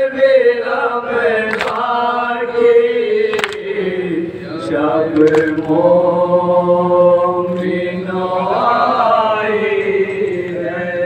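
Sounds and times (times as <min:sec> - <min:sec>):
male voices chanting a lament: 0:00.0 - 0:11.0.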